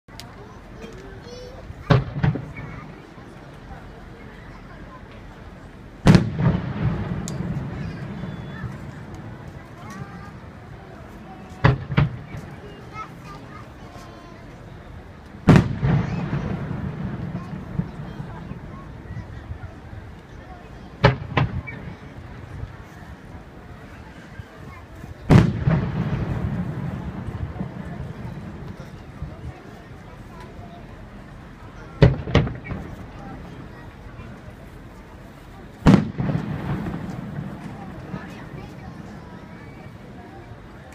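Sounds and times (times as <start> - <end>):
firework boom: 1.9 - 2.6, 6.0 - 9.5, 15.4 - 18.1, 25.3 - 28.8, 32.0 - 33.5, 35.8 - 39.2
rumbling echo: 6.0 - 12.9, 15.4 - 19.9, 25.3 - 29.2, 35.8 - 39.8.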